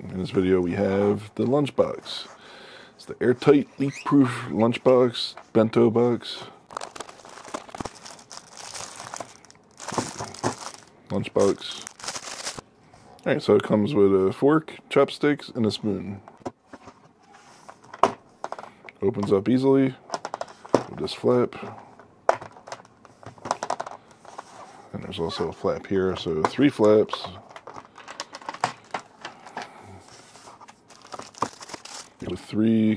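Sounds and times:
plastic film crinkling: 6.6 - 12.6, 30.7 - 32.2
cardboard rustling: 6.7 - 12.6, 30.0 - 32.2.

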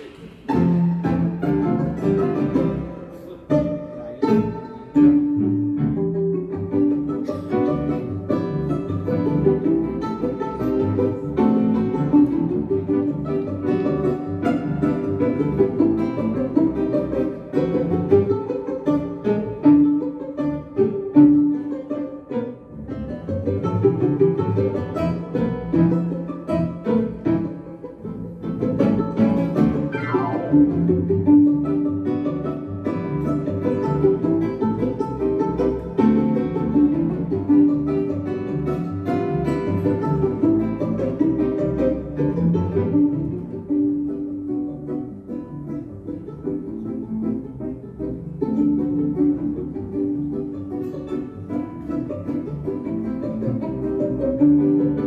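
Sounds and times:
acoustic guitar: 0.0 - 55.0
double bass: 0.0 - 55.0
grand piano: 0.0 - 55.0
violin: 0.0 - 55.0.

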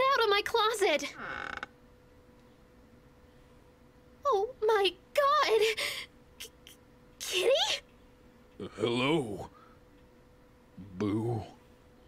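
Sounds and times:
faint hum: 0.0 - 12.0
door creaking open: 1.2 - 1.8.

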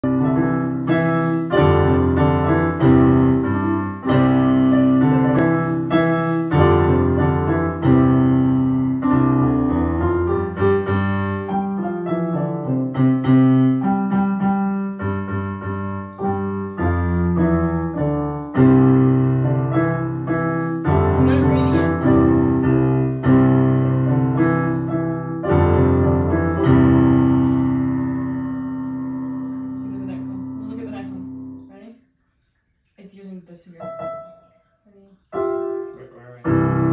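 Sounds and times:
digital piano duet: 0.0 - 36.9.

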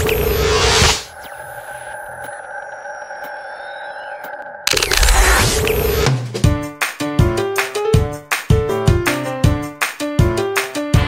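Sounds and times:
electronic drone: 0.0 - 6.2
electronic ticks: 1.1 - 6.1.

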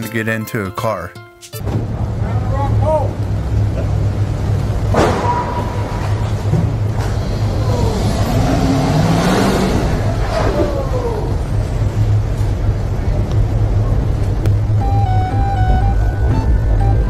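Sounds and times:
low vehicle rumble: 1.6 - 17.0
noise with sliding tones: 3.5 - 17.0
simple melody of held notes: 14.6 - 17.0.

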